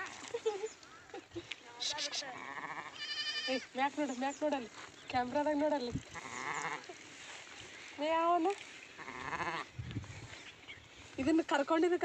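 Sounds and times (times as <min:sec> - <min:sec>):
quavering bleat: 0:01.8 - 0:03.7, 0:06.1 - 0:06.9, 0:09.0 - 0:09.7.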